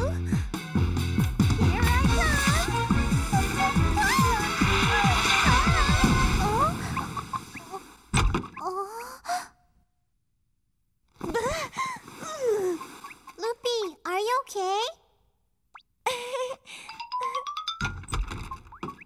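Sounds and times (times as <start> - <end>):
cartoon background music: 0.0 - 7.0.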